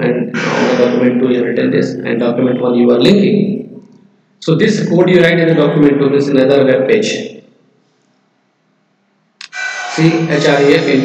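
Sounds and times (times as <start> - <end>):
man speaking: 0.0 - 3.8, 4.4 - 7.4, 10.0 - 11.0.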